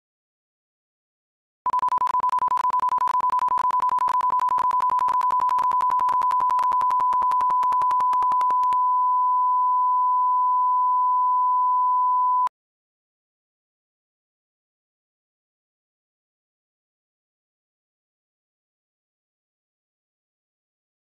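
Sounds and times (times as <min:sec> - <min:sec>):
rapid small clicks: 0:01.7 - 0:08.8
steady test tone: 0:02.3 - 0:12.5.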